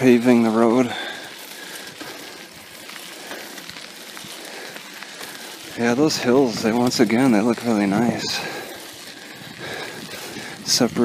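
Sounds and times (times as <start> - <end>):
bicycle tyres on gravel: 0.0 - 11.0.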